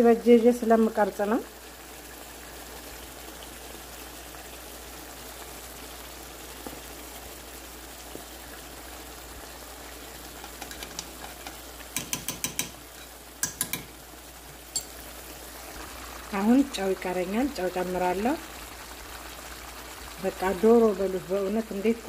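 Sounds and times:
sauce sizzling and bubbling: 0.0 - 22.0.

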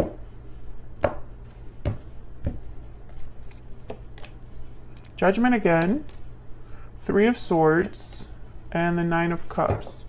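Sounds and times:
cards being shuffled: 2.5 - 6.4.

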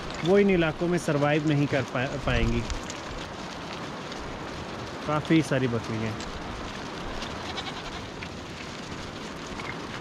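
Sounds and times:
hooves shuffling on rock: 0.0 - 10.0
goats bleating: 7.3 - 8.2.

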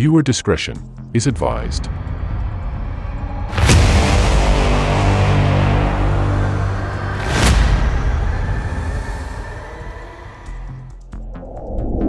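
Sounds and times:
low rumbling noise: 1.5 - 12.0.

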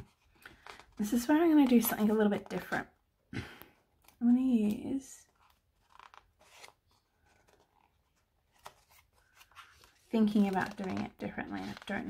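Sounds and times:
paper sticker sheet crinkling: 4.6 - 12.0.

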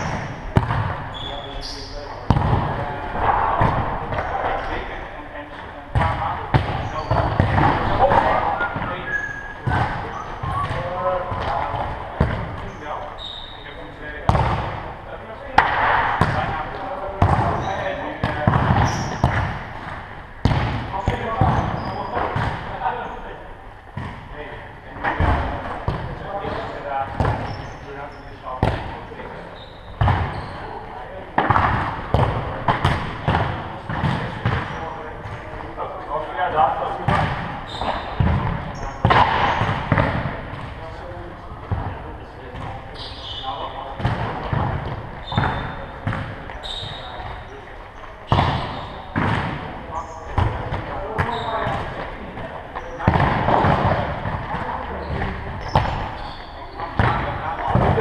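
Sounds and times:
ball bouncing on hall floor: 0.0 - 13.6, 14.2 - 14.9, 15.5 - 23.2, 23.9 - 35.8, 36.4 - 58.0
shoes squeaking on court: 1.1 - 2.3, 6.7 - 10.9, 12.6 - 13.8, 17.3 - 18.0, 18.7 - 19.4, 21.0 - 22.4, 27.2 - 28.4, 29.4 - 30.8, 37.6 - 40.1, 42.6 - 43.8, 45.2 - 49.2, 49.9 - 50.5, 51.2 - 51.9, 54.8 - 58.0.

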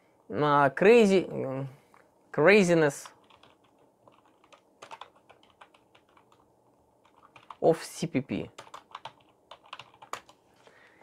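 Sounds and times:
computer keyboard typing: 3.0 - 7.6, 8.5 - 10.4.

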